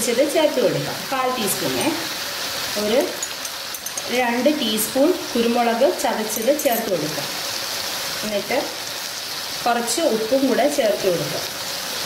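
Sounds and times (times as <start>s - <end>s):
food sizzling in a pan: 0.0s - 12.0s
steel spoon scraping pan: 2.8s - 4.2s.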